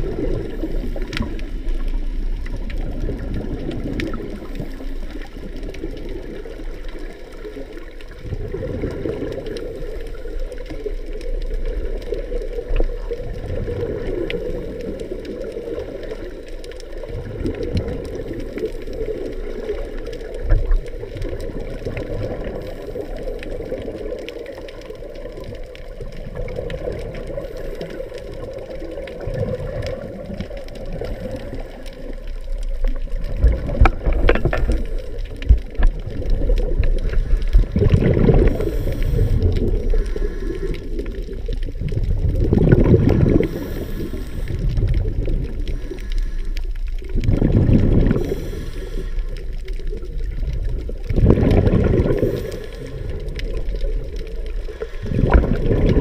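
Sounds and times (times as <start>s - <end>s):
muffled underwater noise: 0.0s - 56.0s
scuba regulator exhaust bubbles: 0.0s - 56.0s.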